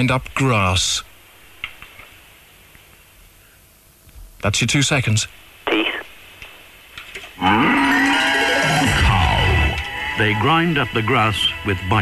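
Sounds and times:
cow mooing: 7.4 - 9.9.

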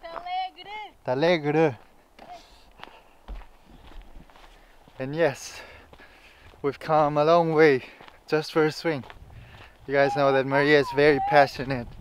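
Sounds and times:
footsteps on gravel: 0.0 - 0.8, 1.7 - 12.0.

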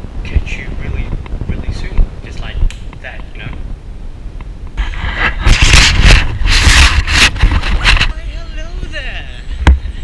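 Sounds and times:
camera case rubbing and scraping: 4.8 - 8.2
person speaking: 7.7 - 9.6.

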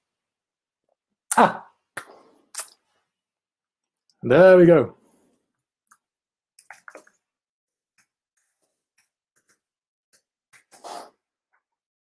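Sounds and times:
man breathing and sniffing: 10.6 - 11.3
breathy exhale through nose: 10.7 - 11.2.

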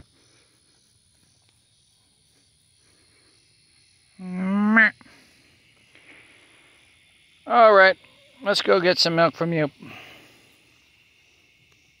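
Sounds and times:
faint high-pitched hiss: 0.0 - 12.0.

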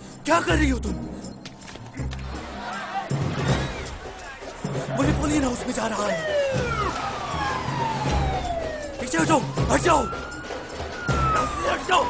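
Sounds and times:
film score with pulsing beat: 0.1 - 12.0
police siren wailing: 5.0 - 12.0.

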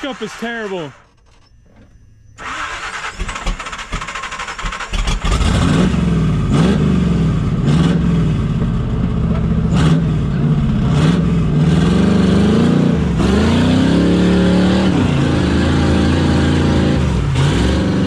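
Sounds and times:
engine revving under load: 2.4 - 8.7, 9.5 - 18.0.

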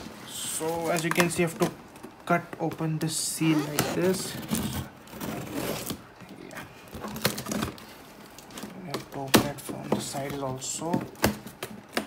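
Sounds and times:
cardboard and tape rustling: 0.0 - 12.0.

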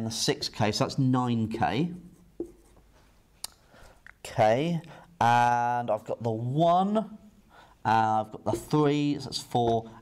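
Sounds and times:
marker writing on whiteboard: 1.9 - 3.0.

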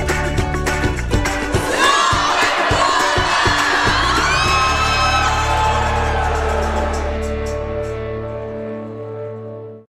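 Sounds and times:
upbeat background music: 0.0 - 9.8
young women cheering and shouting: 1.6 - 7.2
high whoops: 3.4 - 7.2.

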